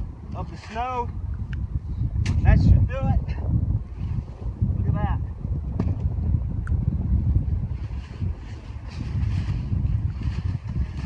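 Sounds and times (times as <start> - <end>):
wind rumbling on microphone: 0.0 - 11.0
rustling tent flap: 7.7 - 11.0
scraping snow: 7.7 - 11.0.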